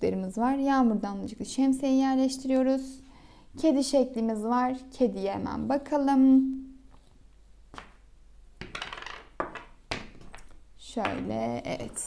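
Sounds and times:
wooden blocks clacking: 8.6s - 10.5s.

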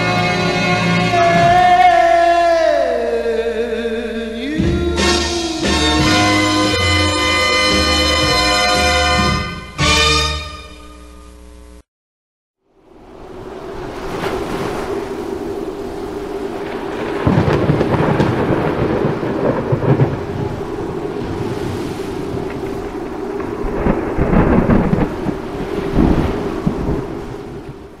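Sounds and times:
thunder rolling: 0.0s - 2.7s, 13.0s - 28.0s
heavy rain: 4.4s - 10.1s, 12.8s - 28.0s.

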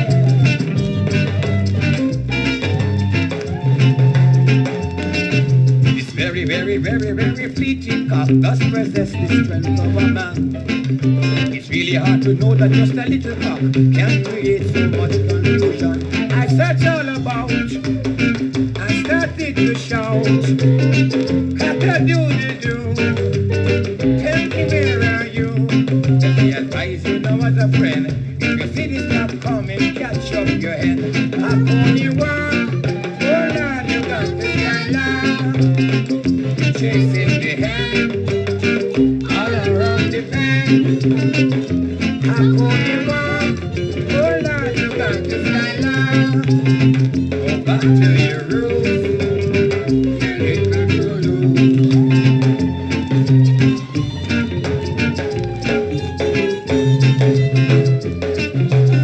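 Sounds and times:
bass line: 0.0s - 59.0s
guitar: 0.0s - 59.0s
man singing: 2.3s - 58.0s.

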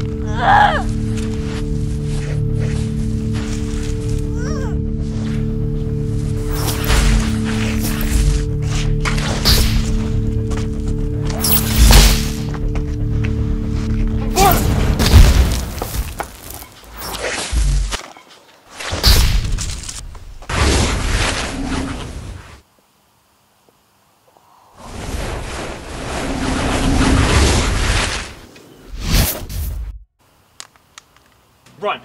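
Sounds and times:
film score sustained tones: 0.0s - 15.5s.

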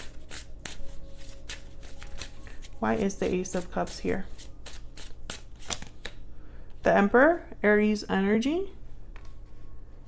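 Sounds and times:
cards being shuffled by hand: 0.0s - 6.2s.

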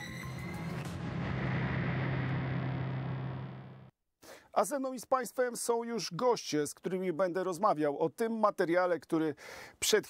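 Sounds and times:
deep boom: 0.2s - 3.9s
low steady drone: 0.6s - 3.9s.

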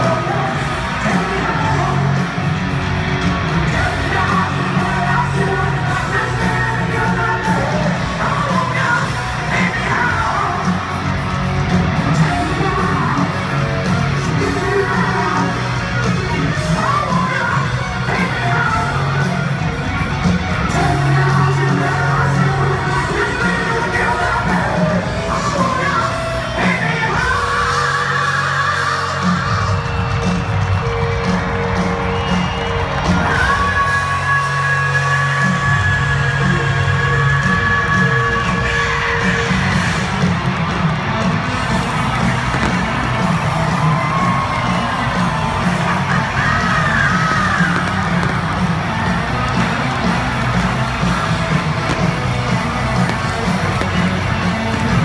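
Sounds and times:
crowd cheering and whooping: 0.0s - 55.0s
distorted electric lead guitar: 0.0s - 55.0s
hard rock band playing live: 0.0s - 55.0s.

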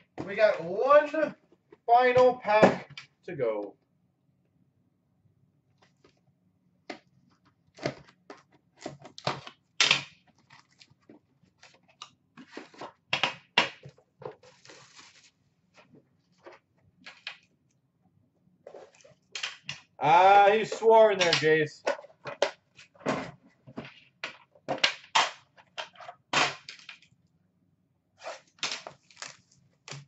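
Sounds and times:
rustling and scraping: 10.2s - 13.1s, 13.8s - 17.3s, 18.6s - 19.3s, 28.2s - 30.0s.

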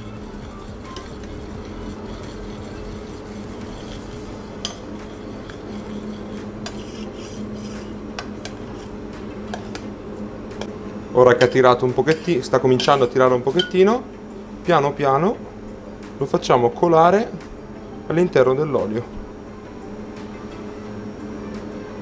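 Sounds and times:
spoon stirring liquid in saucepan: 0.0s - 8.9s, 11.4s - 13.8s
steady low hum: 0.0s - 22.0s.

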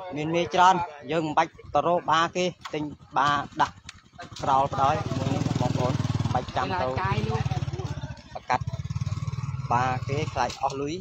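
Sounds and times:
man talking: 0.0s - 11.0s
small engine running: 1.4s - 11.0s.

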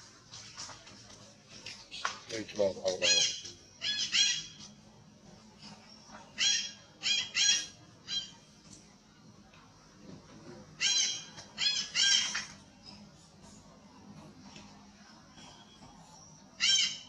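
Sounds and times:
monkey screaming: 16.6s - 17.0s.

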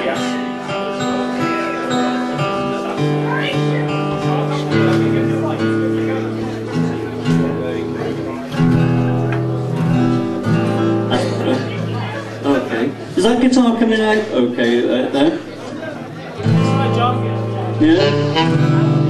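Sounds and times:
acoustic guitar strummed: 0.0s - 19.0s.

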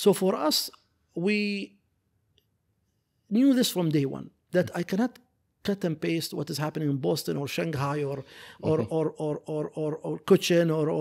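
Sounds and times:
man speaking: 0.0s - 1.8s, 3.3s - 11.0s.

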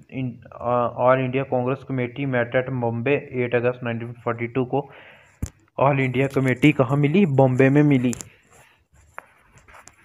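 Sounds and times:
man's voice: 5.8s - 8.3s.

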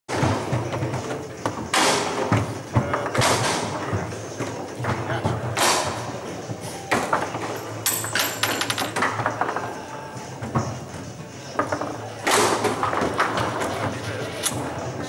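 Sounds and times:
murmur of voices: 0.1s - 7.9s, 8.9s - 15.0s
foosball clacks and knocks: 6.9s - 9.8s.

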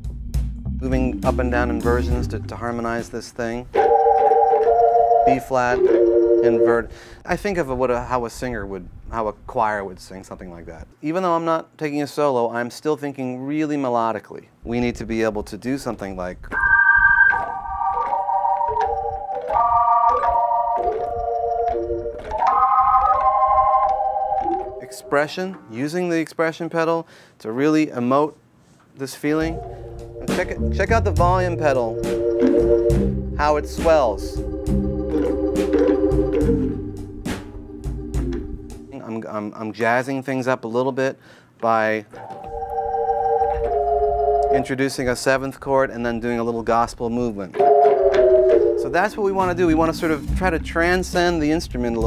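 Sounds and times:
organ playing block chords: 0.0s - 3.0s, 3.7s - 7.2s, 16.5s - 25.4s, 29.4s - 39.0s, 42.2s - 44.8s, 47.5s - 52.0s
low bass note: 0.5s - 2.6s, 29.5s - 32.0s.

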